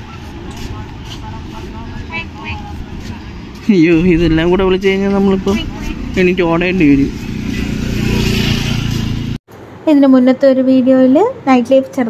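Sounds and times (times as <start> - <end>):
faint voices: 0.0 - 9.1.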